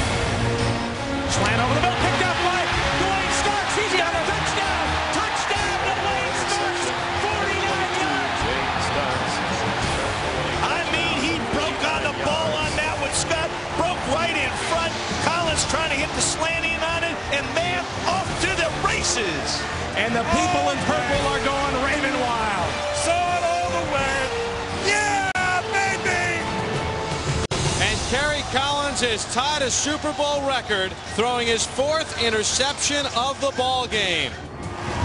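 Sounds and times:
background music: 0.0 - 35.0
crowd shouting and cheering: 0.0 - 35.0.

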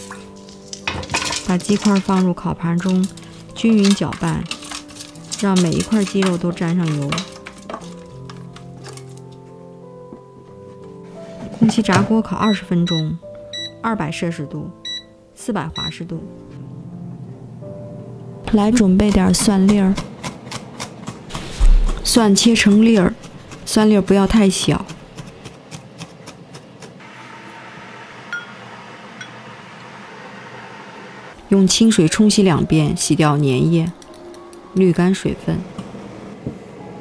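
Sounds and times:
background music of held tones: 0.0 - 20.0, 31.3 - 37.0.

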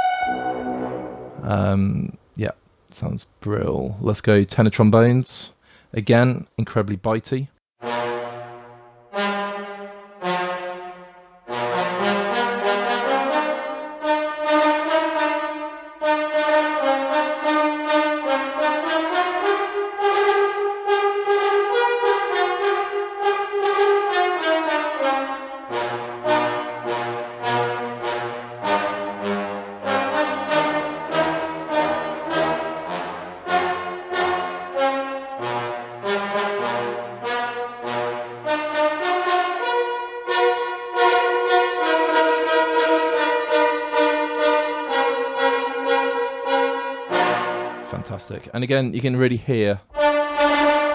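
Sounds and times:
trombone runs of short notes: 0.0 - 1.9
lower trombone notes: 0.0 - 2.4, 7.8 - 48.4, 49.9 - 50.9.

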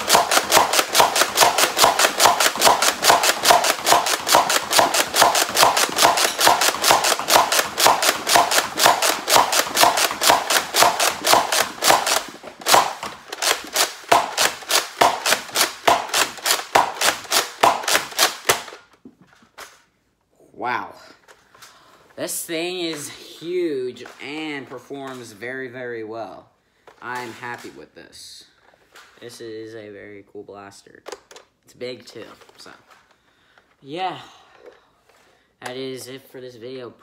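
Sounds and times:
toy blaster plastic clacks: 0.0 - 19.0.

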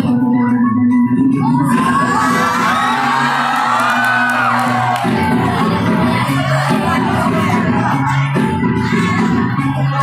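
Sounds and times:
dance music: 0.0 - 10.0
crowd cheering and whooping: 1.6 - 5.6.

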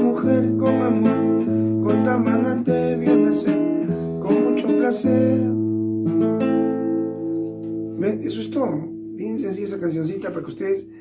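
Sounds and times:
classical guitar strumming chords: 0.0 - 11.0.

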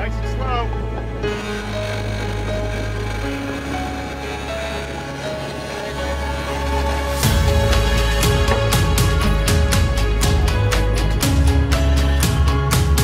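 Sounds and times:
slow ambient music with held notes: 0.0 - 13.0.

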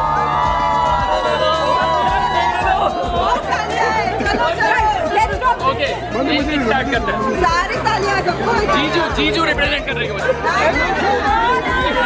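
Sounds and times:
music playing: 0.0 - 12.0
people talking and laughing: 0.0 - 12.0.

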